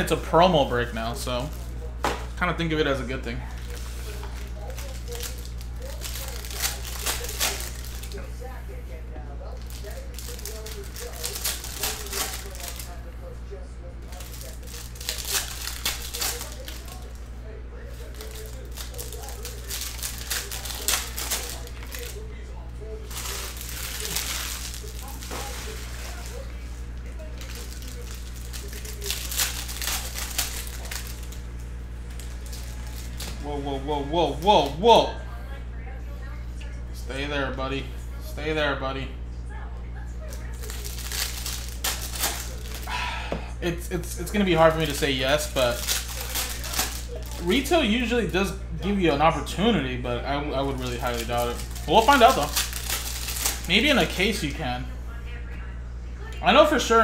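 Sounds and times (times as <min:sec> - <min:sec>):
foil wrappers crinkling: 0:00.0 - 0:35.2, 0:40.2 - 0:54.8.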